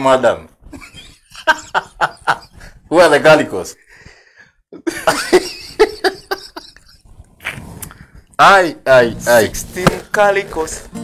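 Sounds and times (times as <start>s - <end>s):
man laughing heartily: 0.7s - 2.9s, 4.7s - 7.2s.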